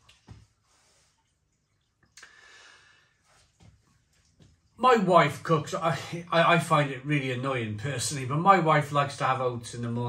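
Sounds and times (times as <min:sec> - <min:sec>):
faint breathy noise: 0:02.2 - 0:03.5.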